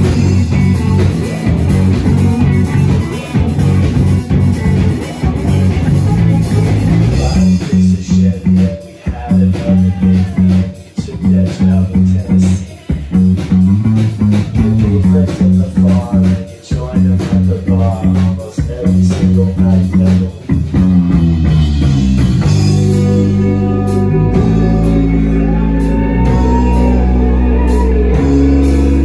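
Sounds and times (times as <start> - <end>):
live rock band playing: 0.0 - 29.0.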